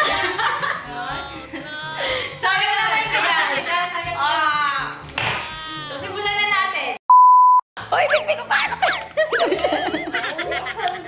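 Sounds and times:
censor bleep tone: 7.1s - 7.6s.

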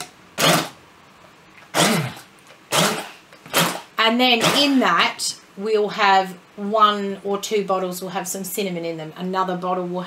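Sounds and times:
stick blender pulsing: 1.7s - 4.8s.

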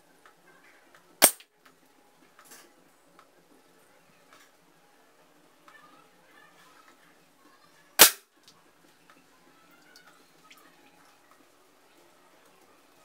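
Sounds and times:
suppressed air pistol shot: 1.2s - 1.4s, 8.0s - 8.2s.

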